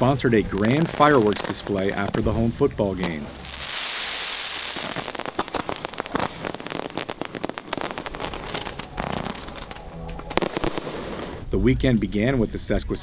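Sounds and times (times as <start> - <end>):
fireworks hissing burst: 0.0 - 9.4, 10.4 - 11.5
fireworks crackling and popping: 0.0 - 12.8.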